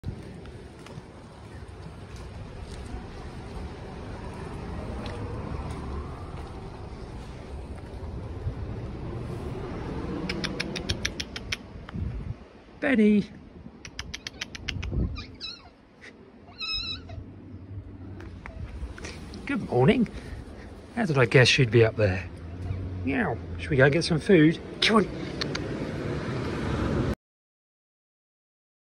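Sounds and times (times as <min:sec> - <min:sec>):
footsteps on concrete: 0:00.0 - 0:08.2
wind rumbling on microphone: 0:00.0 - 0:12.8, 0:13.4 - 0:15.6, 0:16.6 - 0:21.8
sharp clicks: 0:10.2 - 0:12.0, 0:25.3 - 0:25.7
cat meowing: 0:14.3 - 0:15.8, 0:16.4 - 0:17.3.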